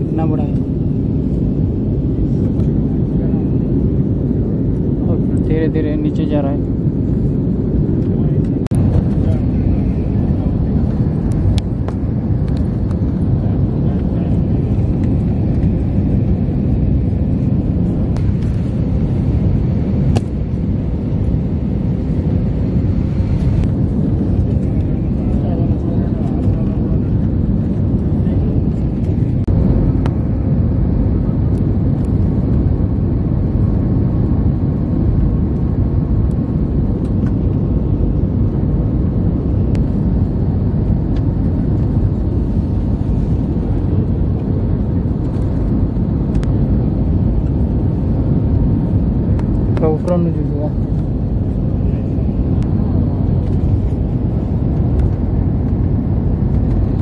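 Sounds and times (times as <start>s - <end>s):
airliner engine roar in cabin: 0.0s - 57.0s.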